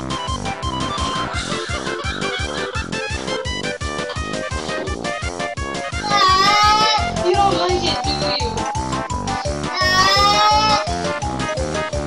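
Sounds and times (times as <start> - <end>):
upbeat background music: 0.0 - 12.0
cat meowing: 6.0 - 7.1, 9.7 - 10.9.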